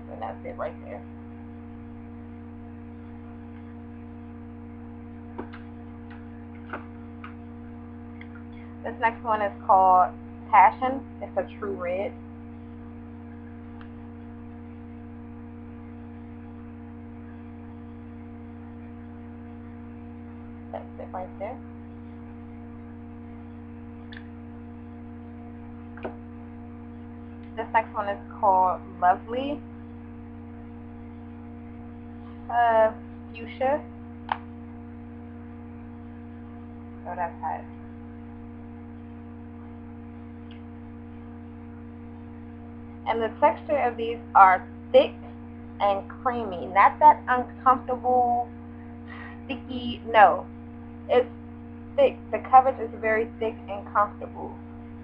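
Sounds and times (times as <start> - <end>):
steady electrical hum: 0.0 - 55.0.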